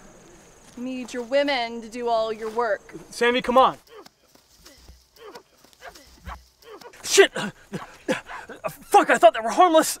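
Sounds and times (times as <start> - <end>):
footsteps running through grass: 2.3 - 8.2.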